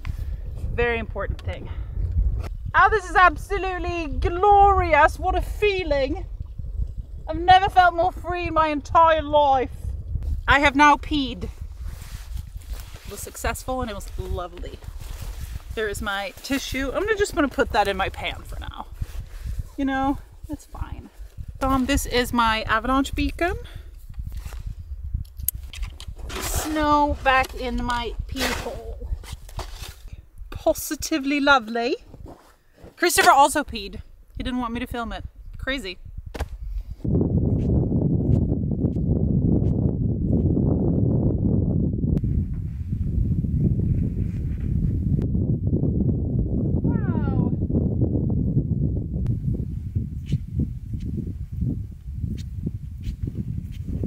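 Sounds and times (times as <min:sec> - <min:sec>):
wind on microphone: 0:00.0 - 0:54.0.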